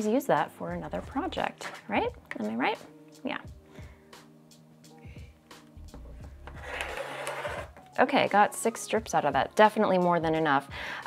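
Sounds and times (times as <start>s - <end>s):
soft background music: 0.0s - 11.0s
rotary cutter rasping through fabric: 6.6s - 7.7s.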